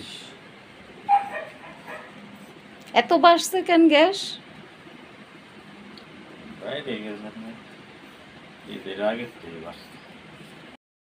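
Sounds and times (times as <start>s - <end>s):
dog barking: 1.1s - 2.2s.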